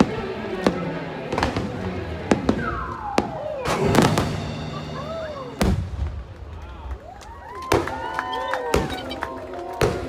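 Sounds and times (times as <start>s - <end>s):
fireworks bangs: 0.0s - 4.9s, 5.5s - 6.6s
show music: 0.5s - 6.2s.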